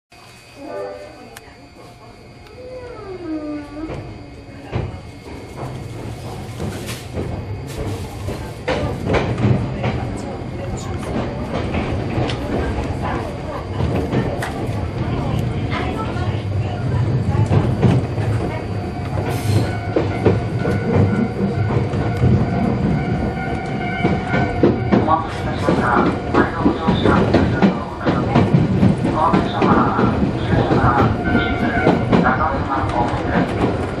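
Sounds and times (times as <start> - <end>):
train rumble: 0.2 - 34.0.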